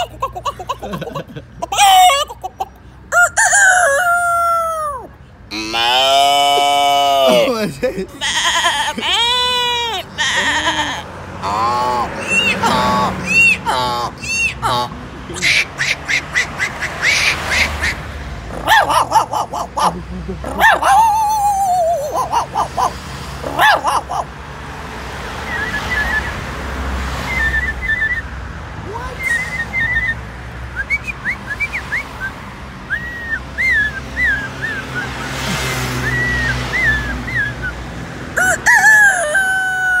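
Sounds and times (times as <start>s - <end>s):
man imitating rooster crowing: 0.0s - 15.6s, 18.5s - 24.3s, 38.3s - 40.0s
low traffic rumble: 0.0s - 40.0s
high chirps and whistles: 12.2s - 12.6s, 13.2s - 13.6s, 14.2s - 14.6s, 25.4s - 26.4s, 27.2s - 28.3s, 29.2s - 30.2s, 36.0s - 37.8s.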